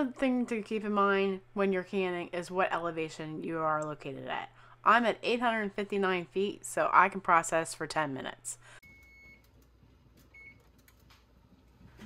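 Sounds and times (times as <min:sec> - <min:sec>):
faint control panel beeps: 0:08.8 - 0:09.6, 0:10.3 - 0:10.7.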